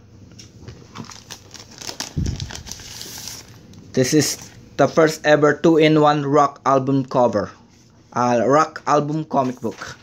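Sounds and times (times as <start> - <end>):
plastic sleeve crinkling: 0.9 - 4.6.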